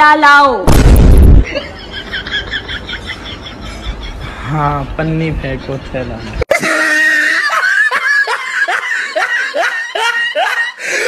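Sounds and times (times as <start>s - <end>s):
person laughing hard: 6.5s - 11.0s.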